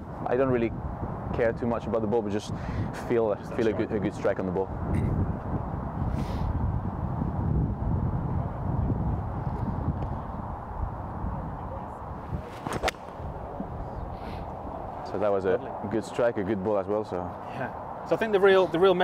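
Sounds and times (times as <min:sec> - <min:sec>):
golf club striking ball: 0:12.5 - 0:13.8.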